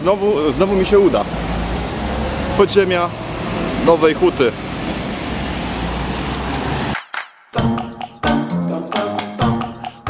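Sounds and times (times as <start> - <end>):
road traffic hum: 0.0 - 7.3.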